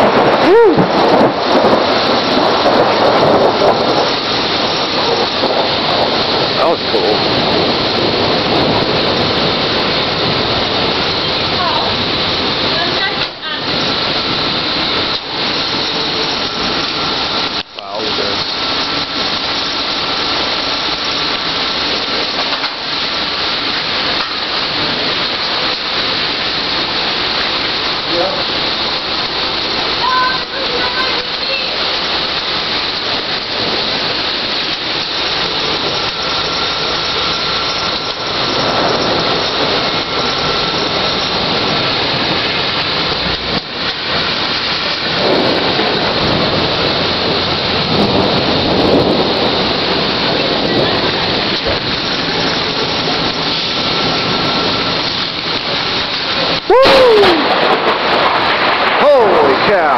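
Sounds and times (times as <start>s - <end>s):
gusting wind: 0.0s - 59.9s
torrential rain pouring: 0.0s - 59.9s.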